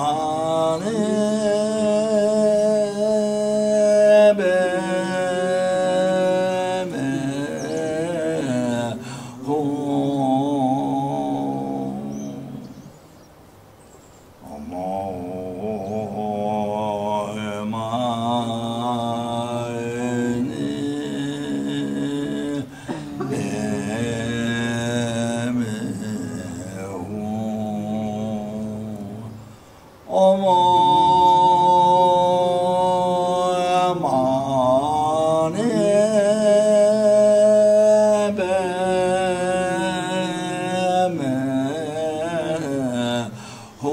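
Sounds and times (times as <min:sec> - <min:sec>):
man chanting in a low voice: 0:00.0 - 0:13.0, 0:14.4 - 0:43.9.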